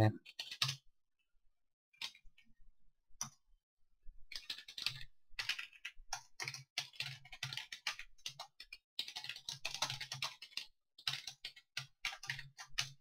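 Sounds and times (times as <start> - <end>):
computer keyboard typing: 0.2 - 0.9, 2.0 - 2.5, 4.3 - 13.0.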